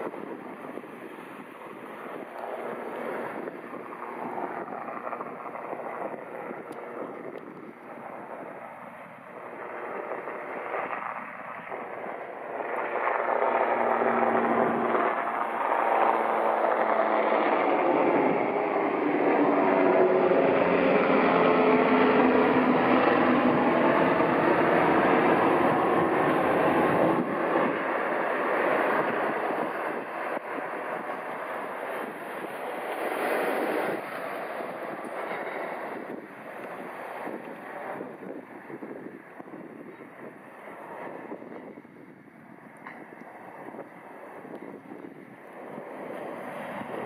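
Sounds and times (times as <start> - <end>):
ferry engine roar: 0.0 - 47.0.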